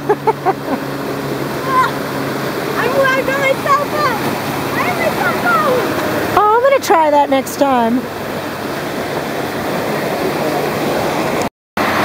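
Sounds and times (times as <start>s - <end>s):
person laughing: 0.0s - 0.9s
river water rushing: 0.0s - 12.0s.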